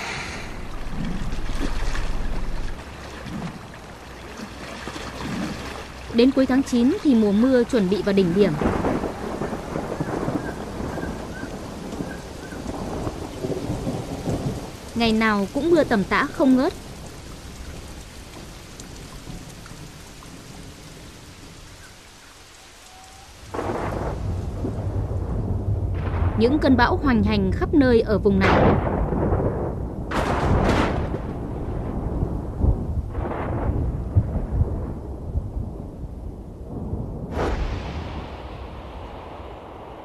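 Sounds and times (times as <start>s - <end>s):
thunder rumbling: 0.0s - 4.0s, 5.8s - 21.1s, 23.4s - 40.0s
heavy rain splashing on water: 0.0s - 40.0s.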